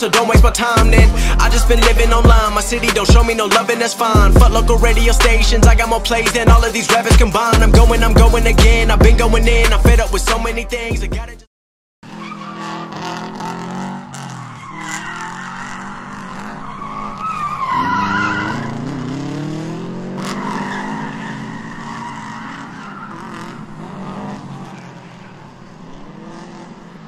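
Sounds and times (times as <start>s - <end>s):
car engine revving: 0.0s - 3.5s, 4.2s - 10.6s, 12.0s - 27.0s
tyres squealing: 12.0s - 19.3s, 19.9s - 25.8s.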